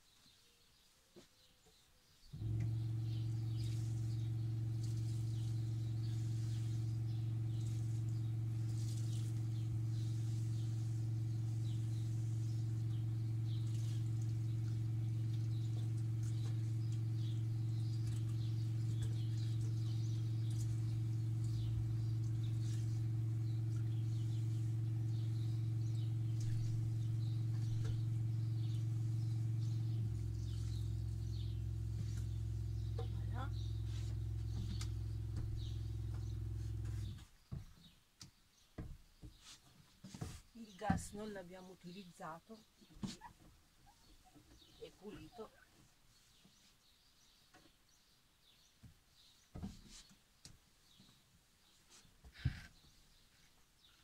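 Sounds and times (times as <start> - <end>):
electric water pump humming: 2.3 - 37.2
tap running: 2.4 - 37.7.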